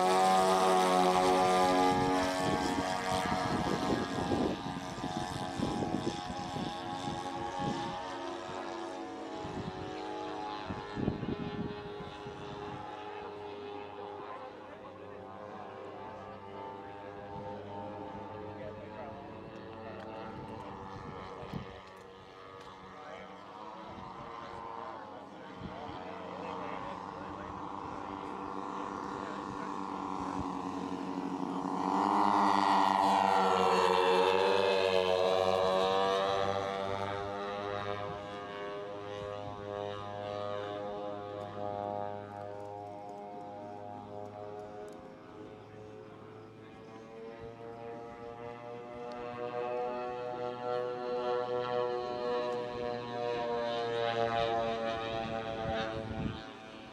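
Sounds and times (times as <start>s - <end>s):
model airplane engines flying past: 0.0s - 56.9s.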